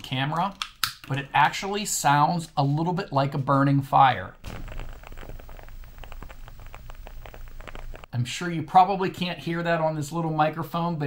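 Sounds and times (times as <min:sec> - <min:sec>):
wooden wick crackling: 0:04.4 - 0:08.1.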